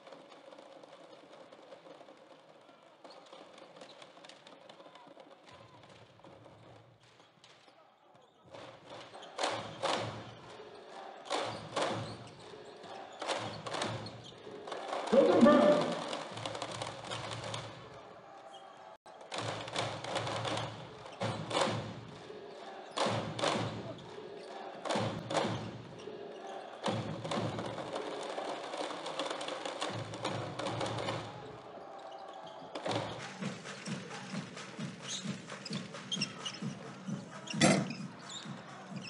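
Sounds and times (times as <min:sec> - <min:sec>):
crowd noise: 0:00.0 - 0:39.0
music in a hall: 0:15.0 - 0:16.8.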